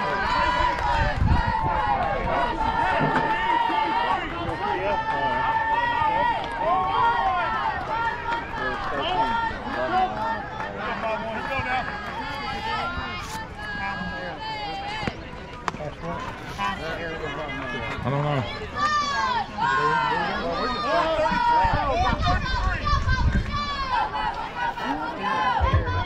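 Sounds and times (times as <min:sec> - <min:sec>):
girls cheering and calling out: 0:18.6 - 0:26.0.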